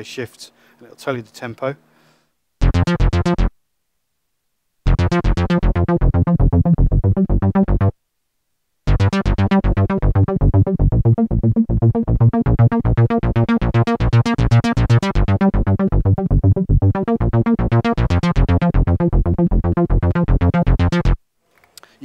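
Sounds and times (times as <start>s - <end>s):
synthesizer arpeggio over deep bass: 2.6s - 3.5s, 4.9s - 7.9s, 8.9s - 21.2s.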